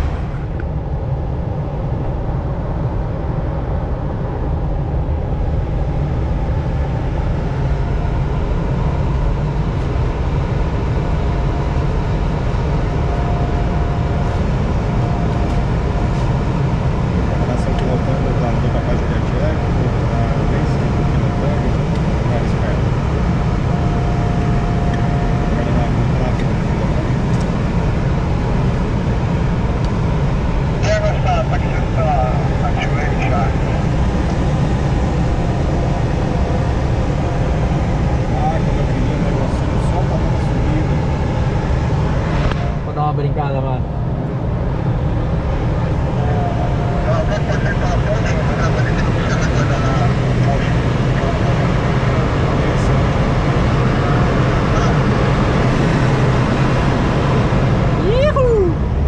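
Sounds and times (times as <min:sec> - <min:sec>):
air rushing in cockpit: 0:00.0 - 0:59.0.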